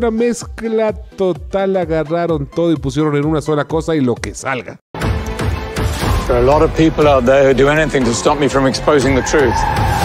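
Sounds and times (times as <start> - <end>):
tire squeal: 9.0 - 10.0.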